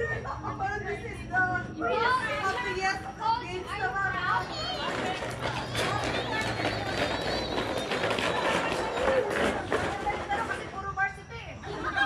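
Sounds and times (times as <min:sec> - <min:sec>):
people chatting and calling out: 0:00.0 - 0:12.0
steady background hum: 0:00.0 - 0:12.0.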